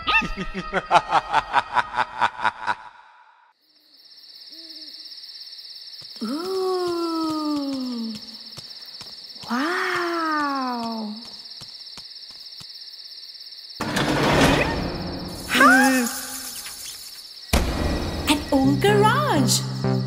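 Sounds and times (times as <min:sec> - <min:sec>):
cricket trill: 0:03.5 - 0:20.0.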